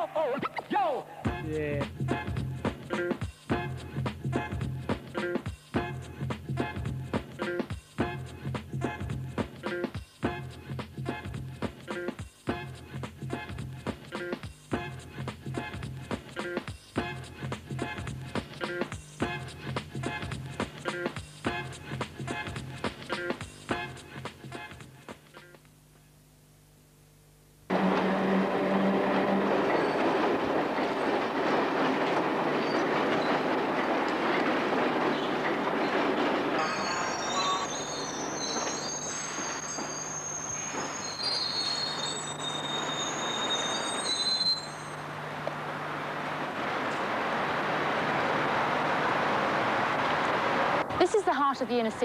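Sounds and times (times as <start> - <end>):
train rumbling on rails: 27.7 - 51.1
metal-on-metal squeal: 28.4 - 30.4, 35.1 - 45.2.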